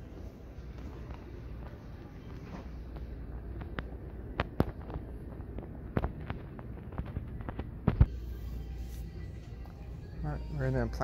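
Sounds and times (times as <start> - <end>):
low hum: 0.0 - 10.5.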